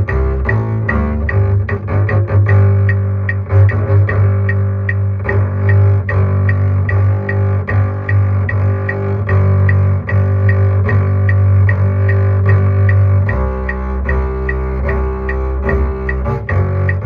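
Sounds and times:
bowed double bass: 0:00.0 - 0:17.0
high click keeping time: 0:00.0 - 0:17.0.

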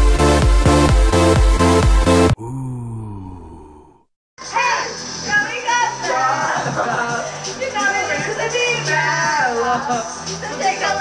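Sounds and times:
low groan-like vocal sound: 0:02.3 - 0:04.1.

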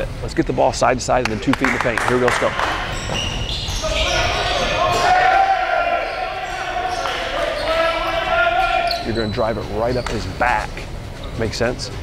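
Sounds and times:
basketballs bouncing: 0:01.2 - 0:09.3.

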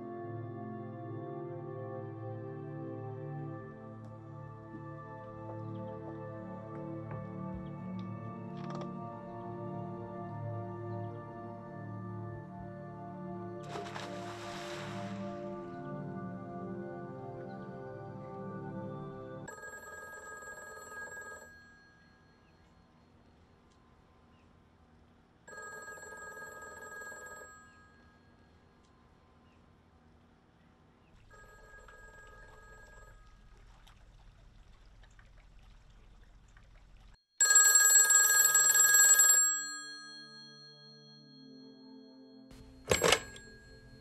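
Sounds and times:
soft music: 0:00.0 - 0:19.8, 0:40.0 - 0:44.0
phone ringing: 0:19.4 - 0:22.4, 0:25.5 - 0:28.6, 0:31.3 - 0:33.3, 0:37.4 - 0:41.8, 0:42.5 - 0:44.0
telephone bell ding: 0:19.5 - 0:22.4, 0:25.5 - 0:28.2, 0:31.3 - 0:33.2, 0:37.4 - 0:41.8, 0:42.6 - 0:44.0
telephone handset clattering: 0:42.6 - 0:44.0.

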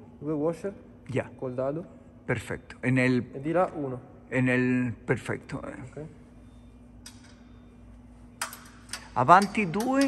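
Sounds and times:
faint steady hum: 0:00.0 - 0:10.0
metallic clicks of bolts: 0:07.0 - 0:07.5, 0:08.4 - 0:10.0.

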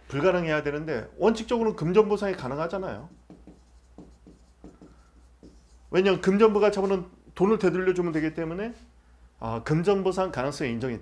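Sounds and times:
stylus scratching on screen: 0:02.7 - 0:07.0.

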